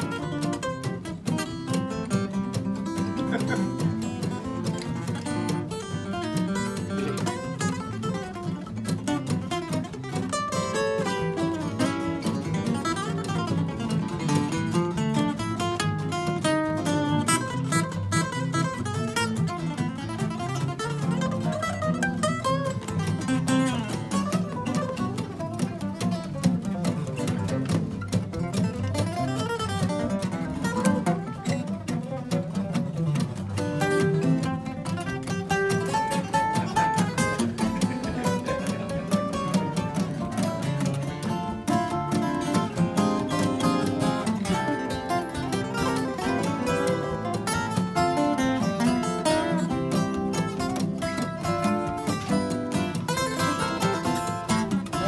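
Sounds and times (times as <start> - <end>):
acoustic guitars jamming: 0.0 - 55.0.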